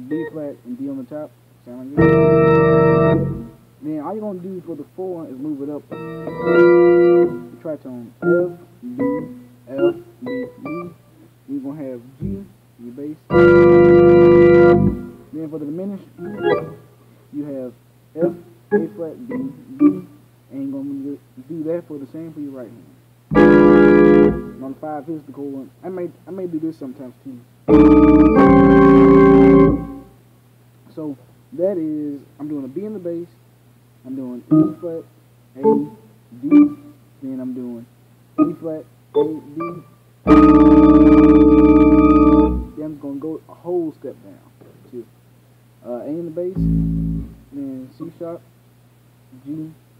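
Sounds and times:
man talking: 0.0s - 2.2s, 3.8s - 6.0s, 7.5s - 9.0s, 9.7s - 10.0s, 11.5s - 13.4s, 15.3s - 22.9s, 24.6s - 27.4s, 30.9s - 33.4s, 34.0s - 39.8s, 42.6s - 45.1s, 45.8s - 46.7s, 47.5s - 48.4s, 49.4s - 49.8s
faint steady hum: 0.0s - 49.9s
church organ chord: 1.7s - 4.4s, 5.2s - 12.5s, 13.2s - 16.8s, 18.2s - 20.2s, 23.3s - 25.0s, 27.7s - 30.1s, 34.1s - 35.0s, 35.6s - 37.6s, 38.4s - 43.0s, 46.5s - 48.3s.

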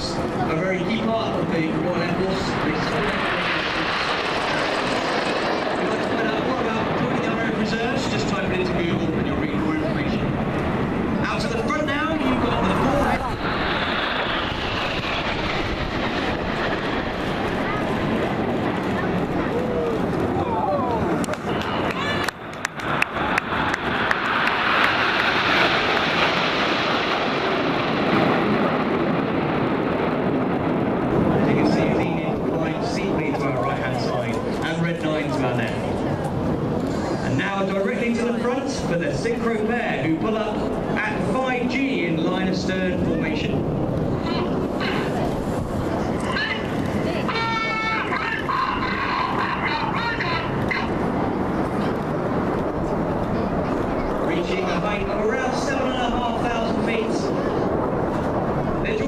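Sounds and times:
jet aircraft flying past: 0.0s - 59.0s.

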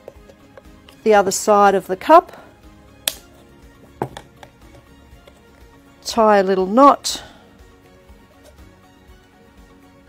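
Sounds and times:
plastic cup clicking: 0.0s - 1.0s, 3.1s - 5.5s
quiet background music: 0.0s - 10.0s.

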